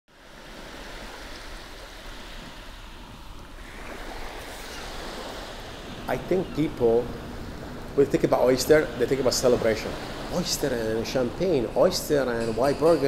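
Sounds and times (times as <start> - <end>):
ocean surf: 0.1 - 13.0.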